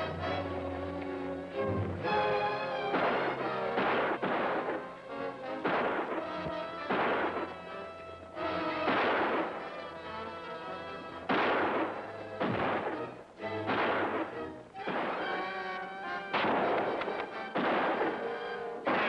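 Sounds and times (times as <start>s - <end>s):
dramatic film score: 0.0s - 19.0s
echoing gunshots: 2.8s - 10.5s, 11.2s - 19.0s.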